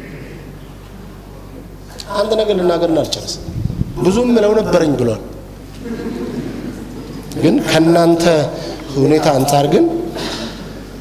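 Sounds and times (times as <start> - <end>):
sound system hiss and hum: 0.0 - 11.0
man speaking over microphone: 2.0 - 5.4, 7.3 - 10.2.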